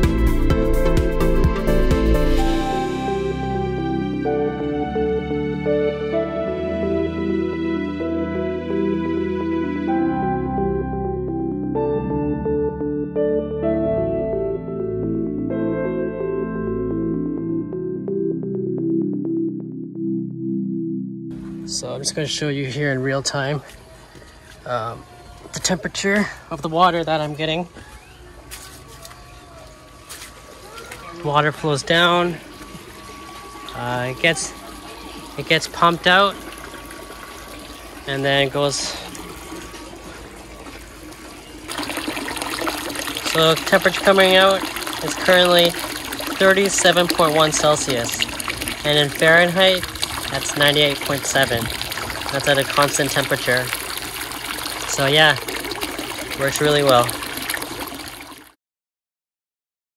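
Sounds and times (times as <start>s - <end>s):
water pouring and splashing into pool: 21.4s - 58.6s.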